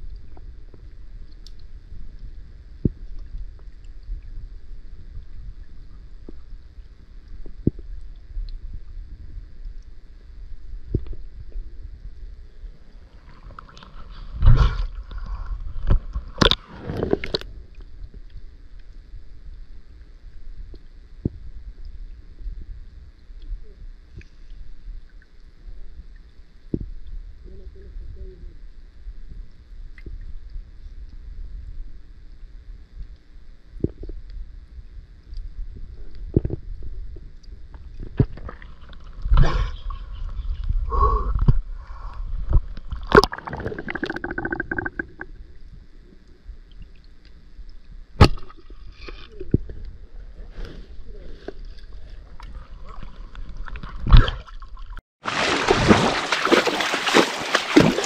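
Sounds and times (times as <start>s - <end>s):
low underwater rumble: 0.0s - 58.0s
bubbling gurgles: 42.4s - 45.4s
splashing gurgle: 42.8s - 45.3s, 52.4s - 58.0s.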